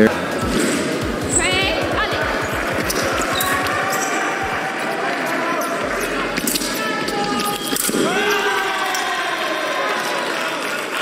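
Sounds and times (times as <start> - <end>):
voices in a large hall: 0.0 - 11.0
shoe squeak: 1.2 - 4.2.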